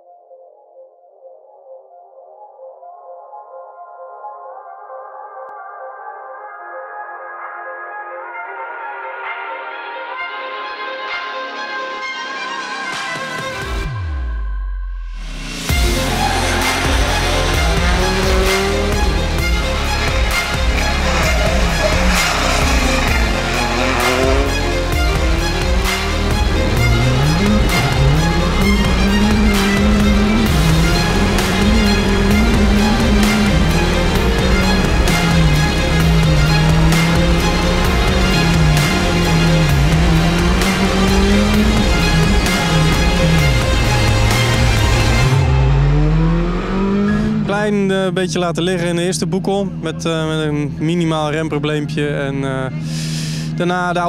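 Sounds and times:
music with heavy bass beat: 15.2 - 47.4
rally car engine revving: 15.6 - 51.7.

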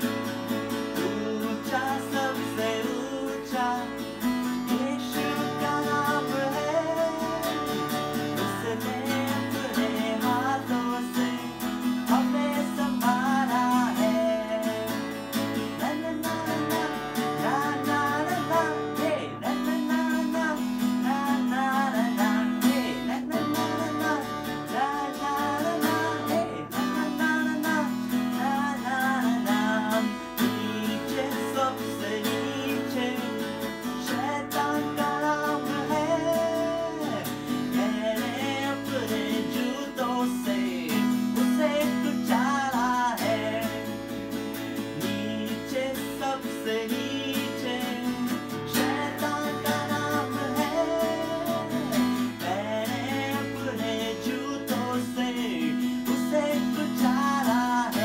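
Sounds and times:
acoustic guitar strumming chords: 0.0 - 58.0
man singing: 0.0 - 58.0.

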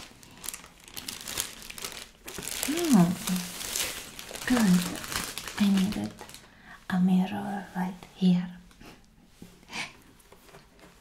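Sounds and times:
woman whispering: 6.8 - 8.7.

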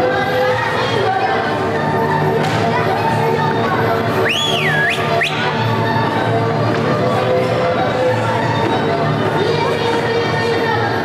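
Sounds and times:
folk dance music: 0.0 - 11.0
loud whistle: 4.2 - 5.5.

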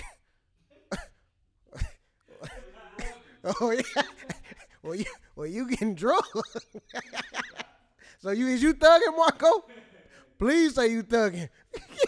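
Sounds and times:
person coughing: 0.0 - 0.3, 0.9 - 6.4.

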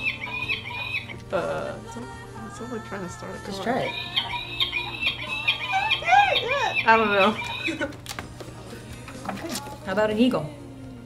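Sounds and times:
falcon screeching: 0.0 - 1.2, 3.7 - 7.9
woman talking: 1.3 - 4.1, 5.9 - 8.0, 9.8 - 10.6
woman laughing: 5.7 - 8.0.

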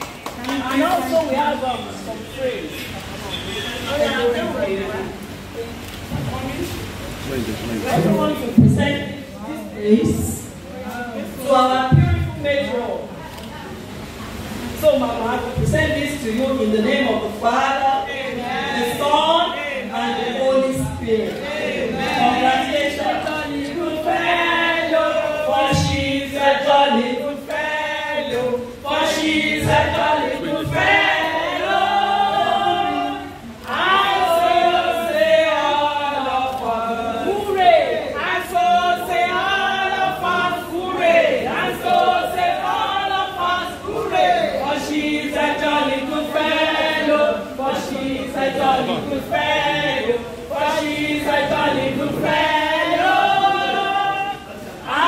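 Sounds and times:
group singing: 14.3 - 55.0
woman singing into microphone: 15.0 - 55.0.

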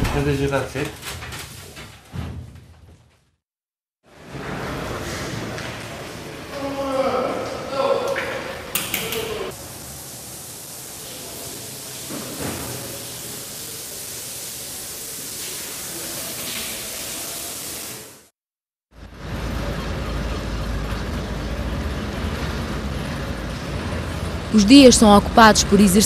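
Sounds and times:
steady hiss: 8.8 - 18.1.

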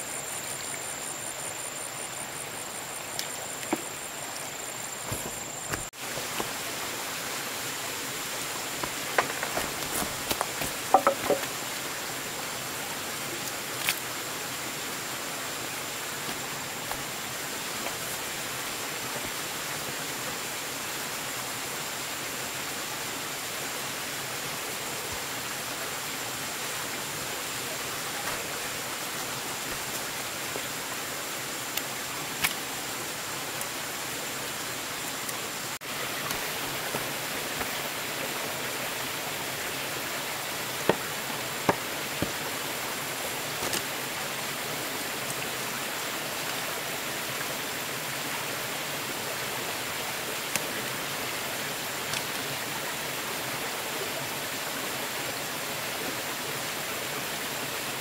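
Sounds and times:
rushing outdoor noise: 0.0 - 58.0
soft knocks: 10.7 - 11.5.

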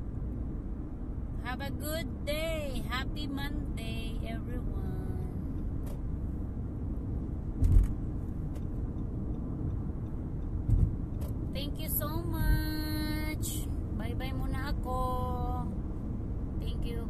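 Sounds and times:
road and tyre rumble: 0.0 - 17.0
sharp low thumps: 10.6 - 11.1.

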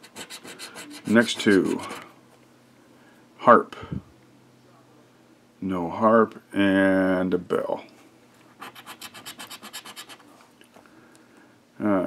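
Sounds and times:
lottery ticket being scratched: 0.0 - 2.0, 8.5 - 10.3.

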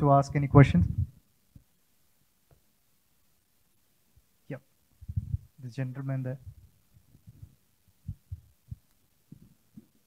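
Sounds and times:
microphone handling thumps: 5.0 - 5.5, 6.4 - 10.0.

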